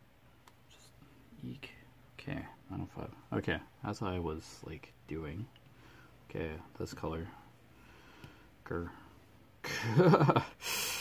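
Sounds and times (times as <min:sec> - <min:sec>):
man chuckling: 0:09.6 - 0:10.6.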